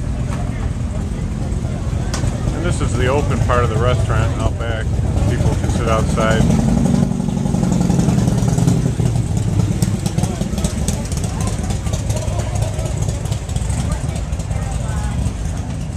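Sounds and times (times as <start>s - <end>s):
crowd chatter: 0.0s - 15.9s
motorcycle engine running: 0.0s - 15.9s.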